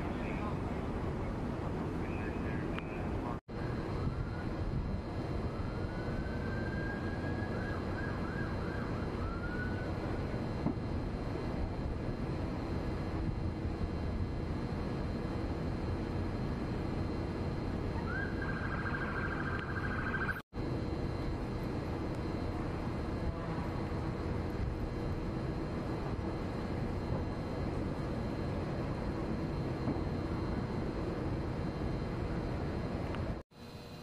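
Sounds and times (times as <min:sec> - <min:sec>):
street noise: 0:00.0 - 0:33.4.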